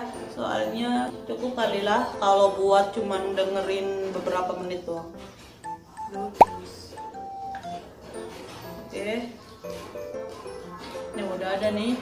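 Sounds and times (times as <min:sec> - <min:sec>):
light background music: 0:00.0 - 0:12.0
short pop dropping in pitch: 0:06.4 - 0:06.6.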